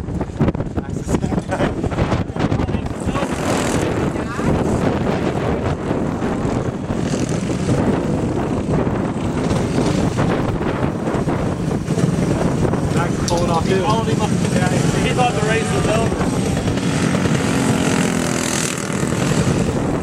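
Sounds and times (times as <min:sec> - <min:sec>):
go-kart engines racing: 0:00.0 - 0:20.0.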